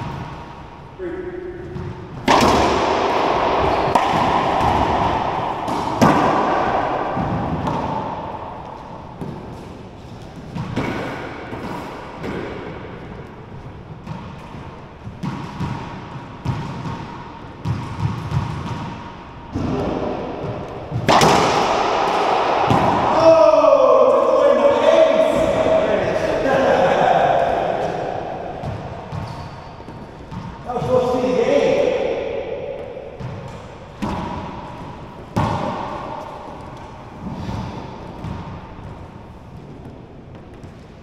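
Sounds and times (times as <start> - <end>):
racquetball cracks echoing: 0.0 - 41.0.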